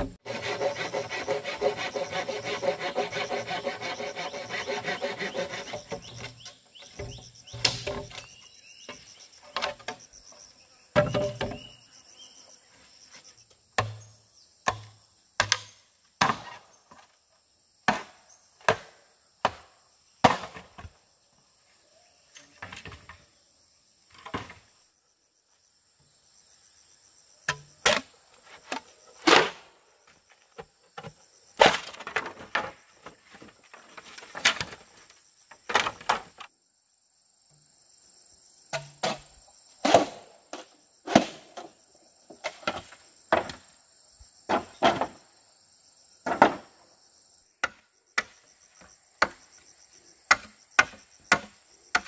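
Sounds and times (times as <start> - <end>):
high insect buzz: 0.0 - 16.0
insects droning: 0.0 - 52.0
machete chopping bamboo: 7.6 - 8.3, 13.8 - 14.0, 14.7 - 16.6, 17.9 - 20.7, 47.6 - 48.4, 50.3 - 52.0
bamboo poles knocking: 11.0 - 11.6.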